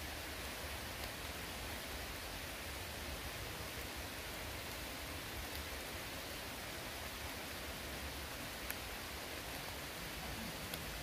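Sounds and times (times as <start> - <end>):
light rain on foliage: 0.0 - 11.0.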